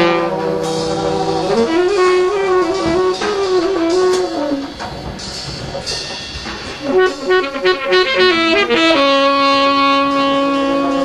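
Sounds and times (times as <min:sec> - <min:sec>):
saxophone holding long note: 0:00.0 - 0:04.9, 0:06.8 - 0:11.0.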